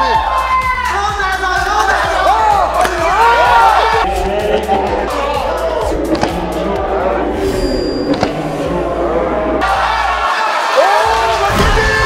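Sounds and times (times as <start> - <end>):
background music: 0.0 - 12.0
voices shouting: 0.0 - 12.0.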